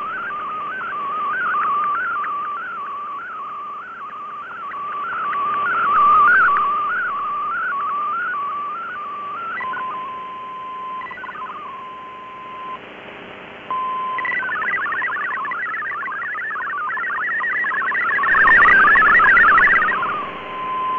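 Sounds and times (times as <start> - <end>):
warbling digital signal tone: 0.0 - 12.8, 13.7 - 20.9
receiver hiss: 0.0 - 20.9.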